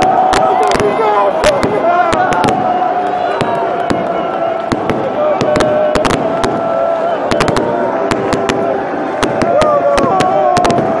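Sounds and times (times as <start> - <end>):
crowd singing and chanting: 0.0 - 11.0
firecrackers cracking: 0.0 - 11.0.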